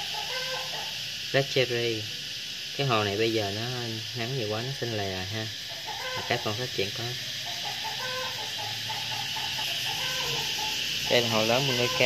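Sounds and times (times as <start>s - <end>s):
steady hiss: 0.0s - 12.0s
short repeated animal calls: 7.4s - 11.0s.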